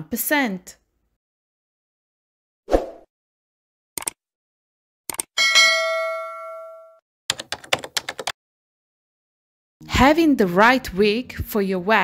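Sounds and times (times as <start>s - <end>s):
notification bell ding: 5.4s - 7.0s.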